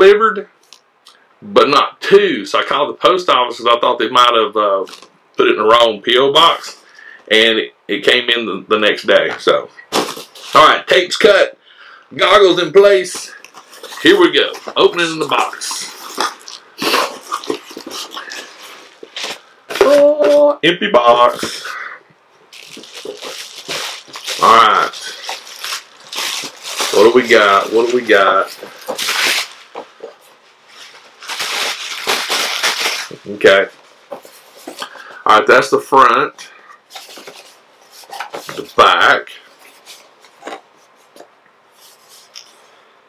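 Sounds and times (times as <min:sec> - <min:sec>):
bubble wrap rustling and crackling: 0:13.0 - 0:20.4, 0:22.5 - 0:35.0
person exclaiming: 0:19.7 - 0:20.6.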